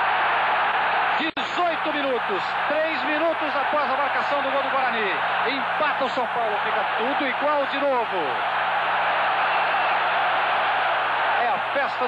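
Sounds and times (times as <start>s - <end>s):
stadium crowd cheering: 0.0s - 12.0s
man commentating: 1.2s - 8.4s, 11.3s - 12.0s.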